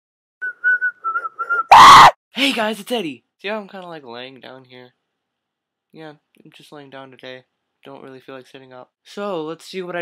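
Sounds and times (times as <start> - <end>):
person whistling: 0.4 - 1.9.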